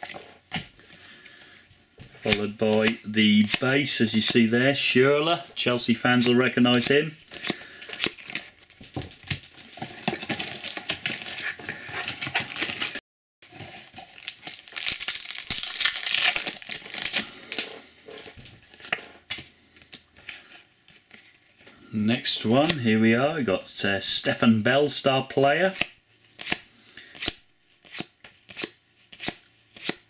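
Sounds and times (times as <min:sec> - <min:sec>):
foil wrapper crinkling and tearing: 0:07.3 - 0:13.0, 0:13.8 - 0:17.7.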